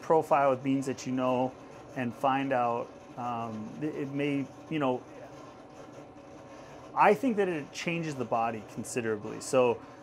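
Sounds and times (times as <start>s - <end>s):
faint mechanical hum: 0.0s - 10.0s.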